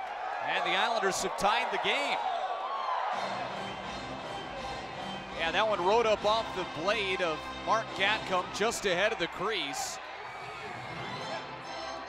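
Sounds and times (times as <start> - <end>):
crowd cheering: 0.0 - 12.0
music over arena loudspeakers: 3.0 - 12.0.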